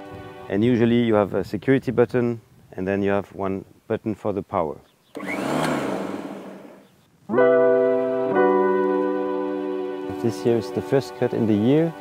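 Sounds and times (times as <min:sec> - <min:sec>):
lawn mower motor whirring: 0:05.1 - 0:06.9
keyboard music with held chords: 0:07.2 - 0:12.0.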